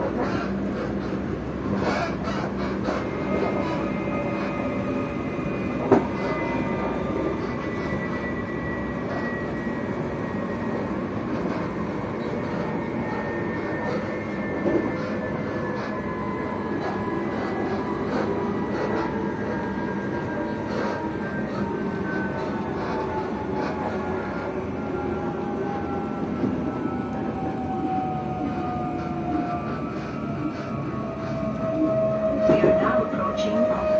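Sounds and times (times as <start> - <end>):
train wheels rumbling on rail: 0.0 - 33.9
train whine falling in pitch: 3.3 - 33.9.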